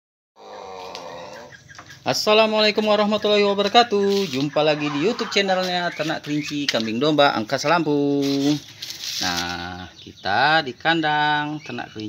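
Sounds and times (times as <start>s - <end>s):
rooster crowing: 0.4s - 1.6s.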